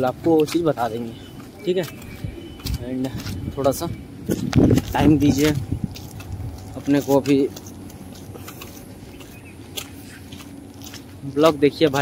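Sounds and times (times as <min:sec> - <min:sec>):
low rumble of handling noise: 0:00.0 - 0:12.0.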